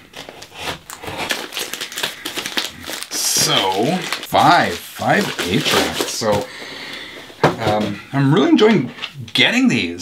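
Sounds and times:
plastic wrapping crinkling: 0:00.0 - 0:08.0.

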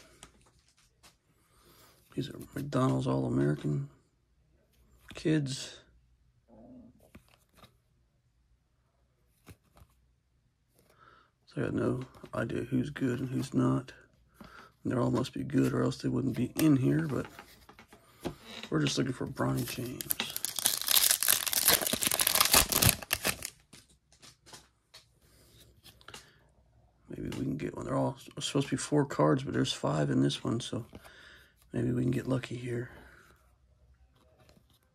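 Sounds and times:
trading cards flipped by hand: 0:07.0 - 0:07.8, 0:09.3 - 0:10.0, 0:15.1 - 0:25.1
wrapper tearing with crinkling: 0:19.9 - 0:23.6.

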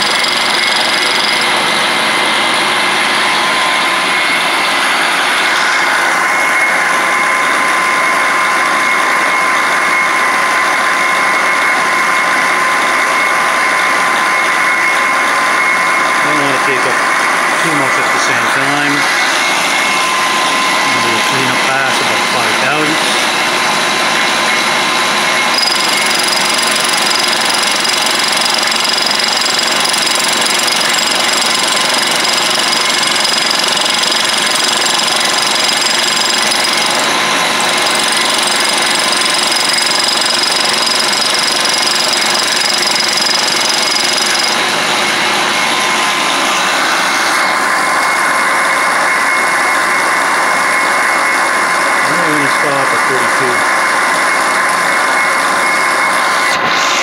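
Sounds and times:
milling machine cutting metal: 0:00.0 - 0:09.0, 0:14.7 - 0:57.0
high ringing tone: 0:00.0 - 0:23.0, 0:24.5 - 0:57.0.

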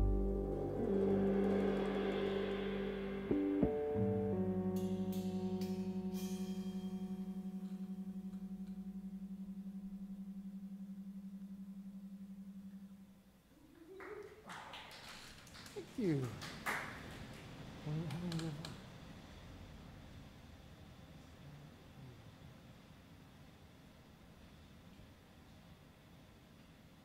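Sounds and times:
electric guitar chord with tremolo: 0:00.0 - 0:13.1.

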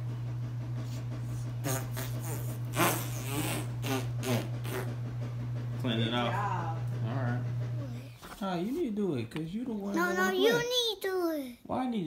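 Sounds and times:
steady low hum: 0:00.0 - 0:10.6
child blowing short puffs: 0:01.6 - 0:04.9.

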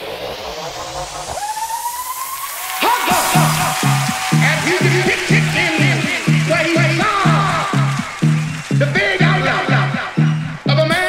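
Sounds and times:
synth tone swooping up: 0:00.0 - 0:06.4
hissing noise sweep rising: 0:00.0 - 0:10.6.

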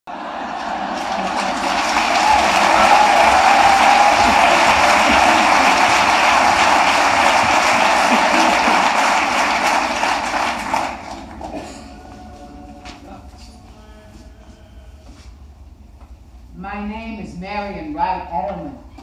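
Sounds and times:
audience applauding: 0:00.1 - 0:13.0.

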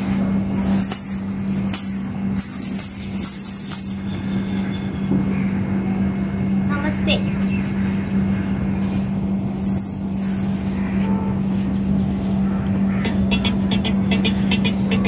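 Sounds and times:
noisy background: 0:00.0 - 0:15.0
steady low hum: 0:00.0 - 0:15.0
ankle bells jingling: 0:00.5 - 0:07.0, 0:09.5 - 0:11.2.

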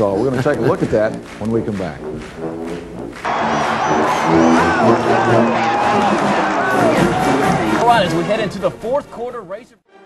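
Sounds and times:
brass band music: 0:00.0 - 0:10.0
stadium crowd cheering: 0:01.7 - 0:08.6.

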